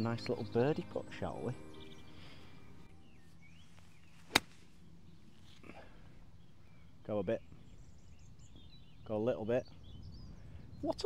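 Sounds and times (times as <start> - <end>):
golf club striking ball: 4.2 - 4.7.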